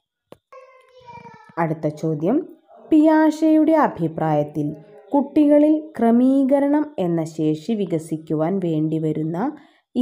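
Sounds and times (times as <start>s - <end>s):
woman's voice: 1.6s - 10.0s.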